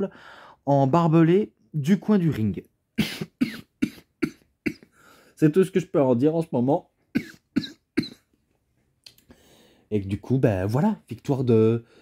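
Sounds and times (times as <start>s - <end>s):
man coughing: 3.0s - 5.0s, 7.1s - 8.3s.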